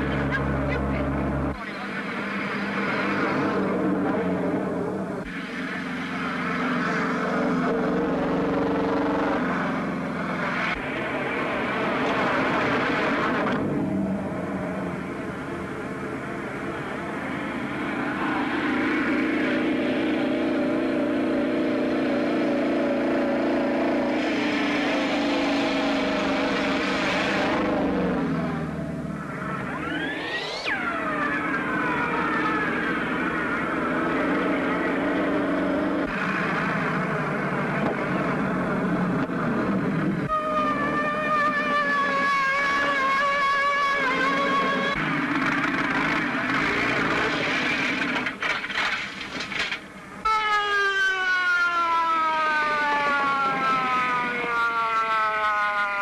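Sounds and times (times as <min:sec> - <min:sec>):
touring car engine at speed: 0:00.0 - 0:50.0
police motorcycle engine: 0:00.0 - 0:56.0.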